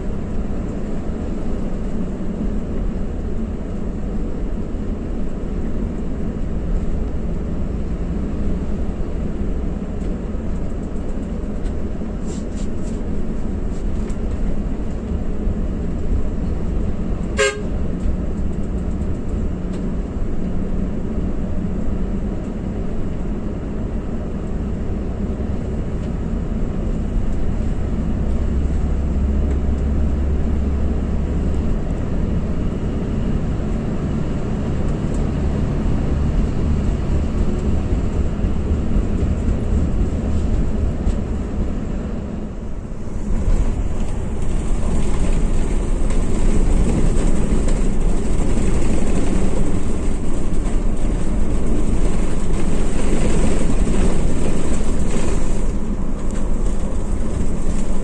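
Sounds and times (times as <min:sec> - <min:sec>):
coach engine drone: 0:00.0 - 0:58.0.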